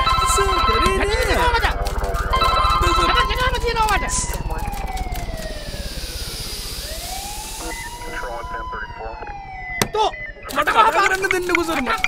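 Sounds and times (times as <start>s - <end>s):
siren wailing: 0.0s - 12.0s
high hiss: 5.6s - 8.3s.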